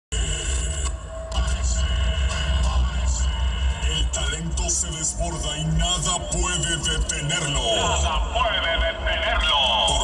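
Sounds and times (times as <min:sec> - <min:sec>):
music with heavy bass: 0:00.1 - 0:10.0.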